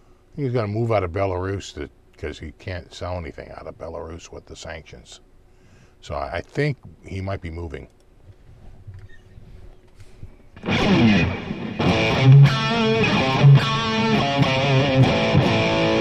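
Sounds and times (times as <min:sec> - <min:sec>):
distorted electric guitar chords: 0:10.6 - 0:16.0.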